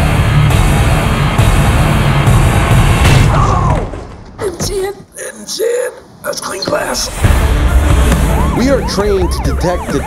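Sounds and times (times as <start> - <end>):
loud trailer music: 0.0 - 4.2, 6.9 - 9.4.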